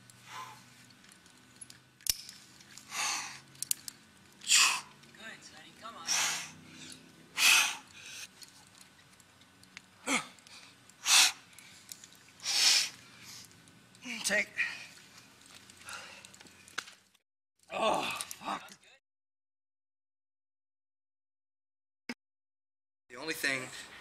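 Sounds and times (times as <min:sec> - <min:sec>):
person grunting: 0:17.7 - 0:18.6.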